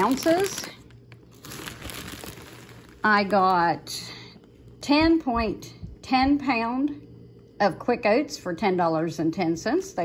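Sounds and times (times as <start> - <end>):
plastic bag crinkling: 0.0 - 4.5.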